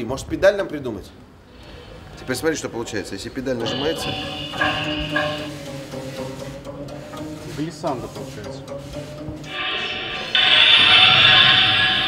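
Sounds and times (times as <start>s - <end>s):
wires ringing with pitched tones: 1.8s - 6.4s, 9.5s - 12.0s.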